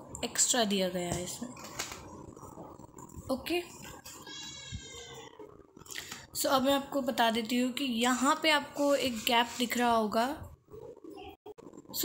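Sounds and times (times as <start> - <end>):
faint high-pitched animal cry: 4.2 - 5.4.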